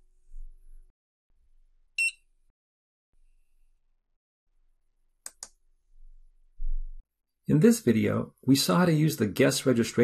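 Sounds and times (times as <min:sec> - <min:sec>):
keycard encoder beep: 0:02.0 - 0:02.2.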